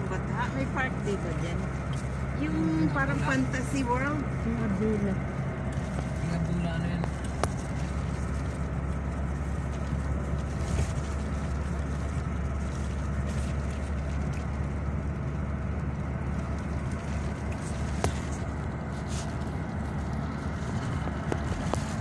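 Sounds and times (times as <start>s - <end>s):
vehicle road and engine rumble: 0.0s - 22.0s.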